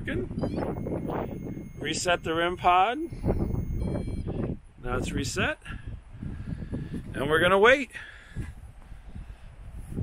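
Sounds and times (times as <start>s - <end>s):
wind rumble on microphone: 0.0s - 10.0s
high electronic beep: 0.4s - 4.4s.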